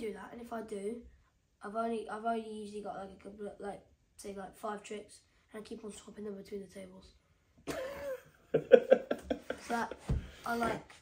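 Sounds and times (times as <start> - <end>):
man laughing: 7.7 - 10.0.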